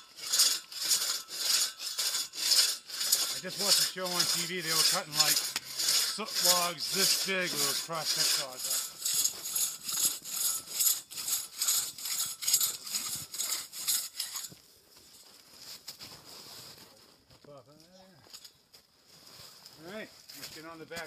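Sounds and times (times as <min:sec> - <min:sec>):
crosscut saw rasping through wood: 0:00.0 - 0:14.6.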